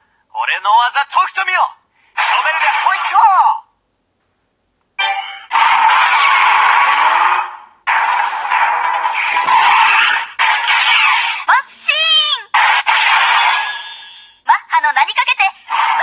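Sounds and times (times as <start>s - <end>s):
crackly voice from toy speaker: 2.2s - 3.6s, 10.7s - 12.7s
high squealing voice: 9.5s - 14.4s.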